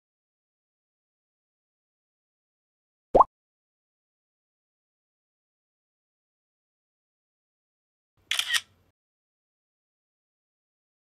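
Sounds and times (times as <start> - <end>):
camera shutter double click: 8.3 - 8.7.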